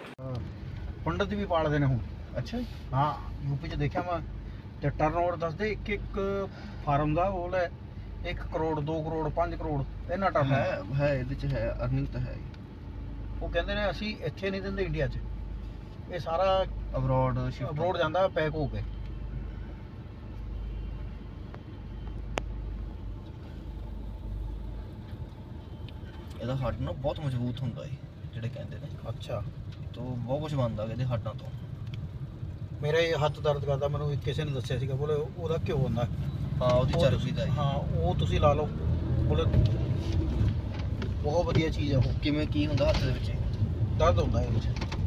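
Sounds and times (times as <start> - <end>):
car engine rumble inside cabin: 18.6 - 45.0.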